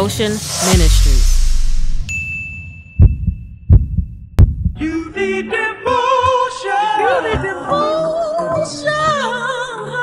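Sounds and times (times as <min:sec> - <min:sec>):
high chime tone: 0:02.0 - 0:03.2
heartbeat thumps: 0:03.0 - 0:04.8
music with singing: 0:04.8 - 0:10.0.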